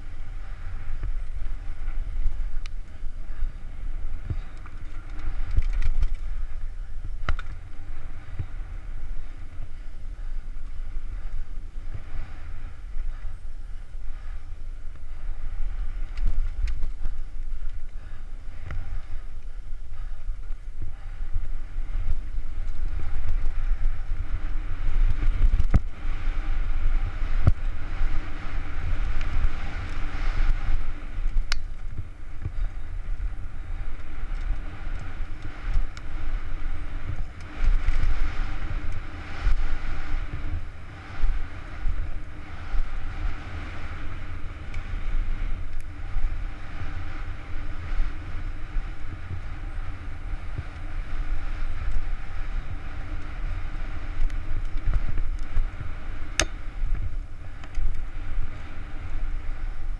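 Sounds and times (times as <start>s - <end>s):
wind buffeting microphone: 0.0s - 59.9s
tyres crunching on loose dirt: 0.8s - 9.9s
bike knocks and rattles: 4.1s - 8.6s.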